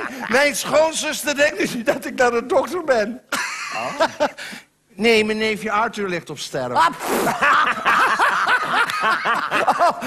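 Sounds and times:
person laughing: 0:03.3 - 0:04.4, 0:07.1 - 0:10.0.

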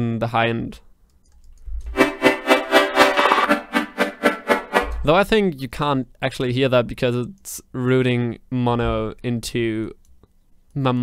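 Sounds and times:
pulsing synthesizer chords: 0:01.9 - 0:05.1.

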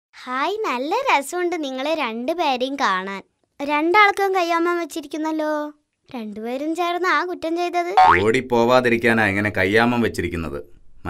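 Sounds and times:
fuller cartoon voice: 0:07.8 - 0:08.4.

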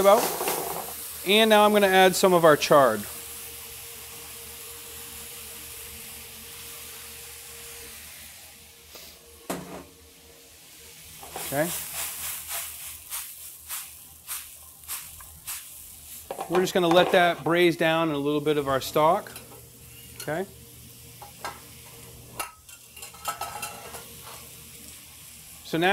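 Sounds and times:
greens sizzling in a hot pan: 0:00.0 - 0:25.9.

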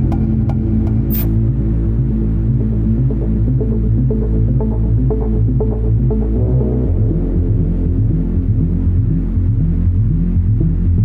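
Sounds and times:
dark electronic music: 0:00.0 - 0:11.0.

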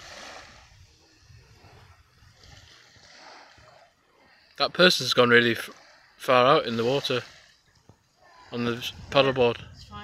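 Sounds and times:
wind on microphone: 0:00.0 - 0:03.9, 0:08.4 - 0:10.0
small waves hissing: 0:00.0 - 0:10.0.

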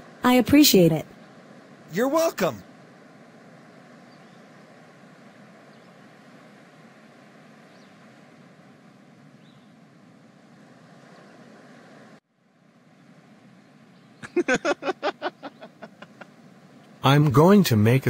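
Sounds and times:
wind: 0:00.0 - 0:18.0
surf washing: 0:14.4 - 0:16.3.

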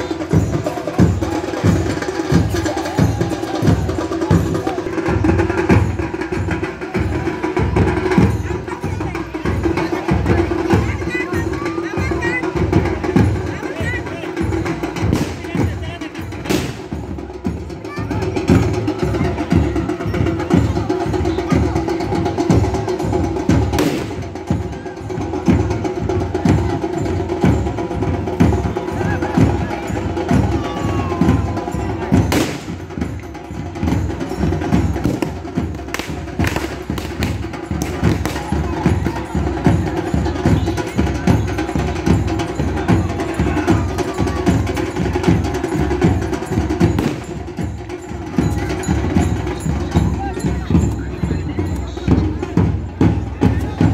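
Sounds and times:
crowd voices: 0:00.0 - 0:53.9
dhol drums beating: 0:00.0 - 0:53.9.

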